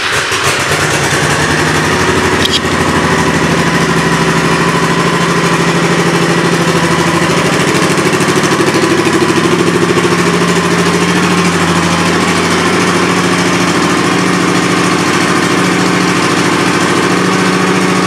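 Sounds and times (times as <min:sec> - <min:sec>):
motorcycle engine idling: 0:00.0 - 0:18.0.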